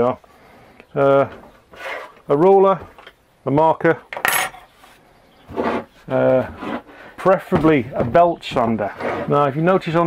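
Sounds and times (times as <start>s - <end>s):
metal ruler clattering: 4.2s - 4.6s.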